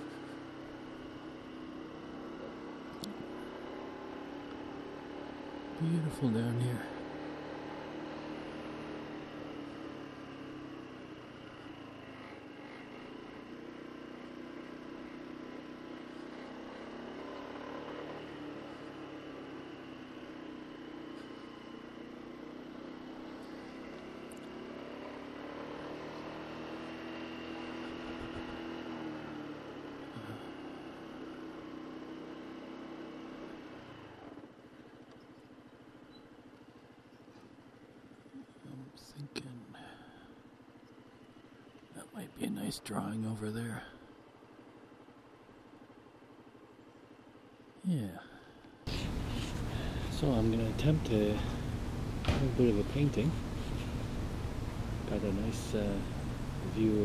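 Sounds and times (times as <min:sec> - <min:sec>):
scooter engine running: 0:00.0 - 0:38.3, 0:48.9 - 0:57.0.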